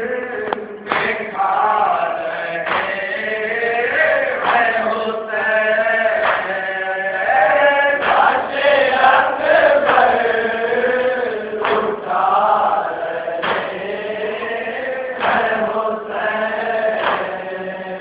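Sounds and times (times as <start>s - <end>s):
men chanting a lament: 0.0s - 18.0s
short sharp beat: 13.4s - 13.8s.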